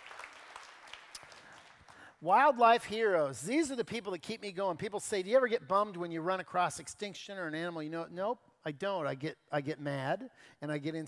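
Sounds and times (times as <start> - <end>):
audience applause: 0.0 - 2.0.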